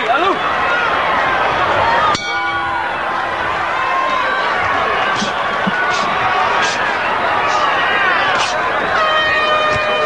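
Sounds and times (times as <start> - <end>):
arena crowd noise: 0.0 - 10.0
boxing ring bell ringing: 2.1 - 3.0.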